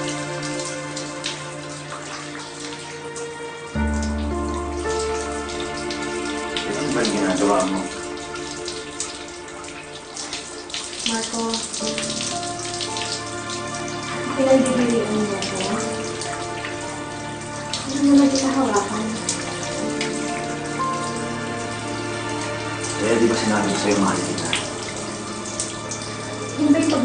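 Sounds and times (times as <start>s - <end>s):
shower water spraying: 0.0s - 27.0s
soft music of sustained chords: 0.0s - 27.0s.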